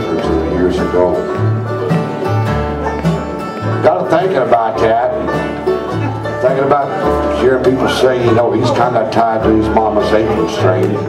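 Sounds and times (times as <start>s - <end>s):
acoustic guitar: 0.0s - 11.0s
banjo: 0.0s - 11.0s
fiddle: 0.0s - 11.0s
mandolin: 0.0s - 11.0s
upright bass: 0.0s - 11.0s.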